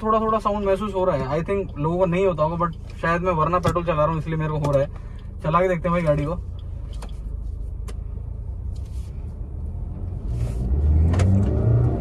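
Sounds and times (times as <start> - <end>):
car engine revving: 9.4 - 12.0.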